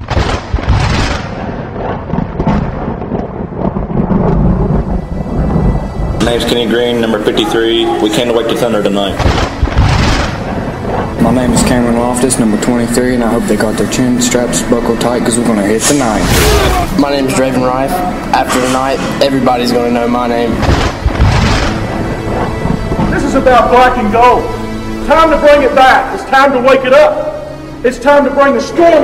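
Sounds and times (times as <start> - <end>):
thunder clap and rumble: 0.0 - 25.4
background music: 0.0 - 29.0.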